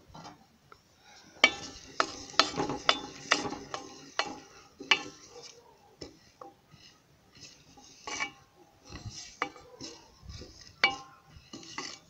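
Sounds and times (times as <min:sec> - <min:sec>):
wooden spoon stirring in a pot: 0:01.3 - 0:12.0.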